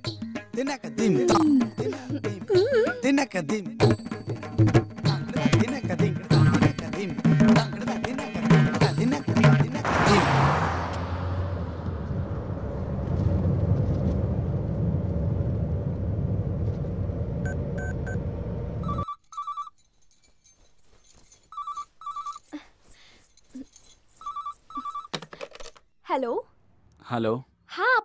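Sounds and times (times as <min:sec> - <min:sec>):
car cabin rumble: 0:09.9 - 0:19.0
telephone ringing: 0:18.8 - 0:19.8, 0:21.5 - 0:22.4, 0:24.2 - 0:25.2.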